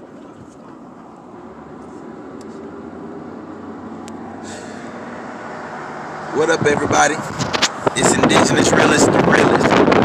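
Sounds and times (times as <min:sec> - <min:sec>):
car cabin hum: 0:00.0 - 0:04.4.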